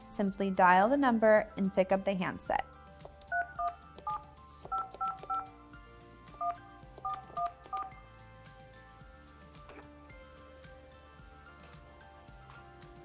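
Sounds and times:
two-tone phone dialing beeps: 3.3 - 5.5, 6.4 - 7.9.

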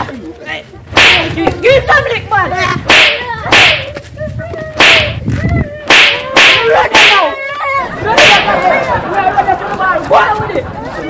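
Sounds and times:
sharp lashing strikes: 0.9 - 1.4, 2.8 - 3.9, 4.8 - 5.2, 5.9 - 7.3, 8.1 - 8.7.

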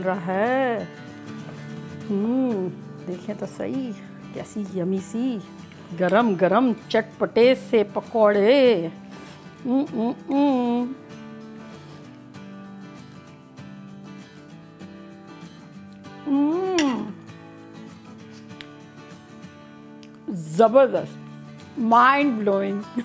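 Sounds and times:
soft background music: 0.0 - 23.0
woman humming mmm: 2.0 - 2.8, 9.6 - 11.0, 16.2 - 17.2.

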